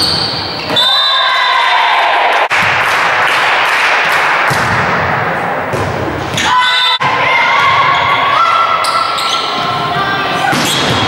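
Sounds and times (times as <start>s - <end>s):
volleyball thuds echoing: 4.4s - 8.0s.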